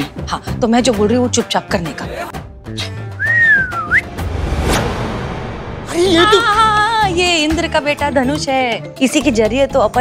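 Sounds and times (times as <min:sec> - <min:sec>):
background music: 0:00.0 - 0:10.0
woman whistling a sliding note: 0:03.2 - 0:04.1.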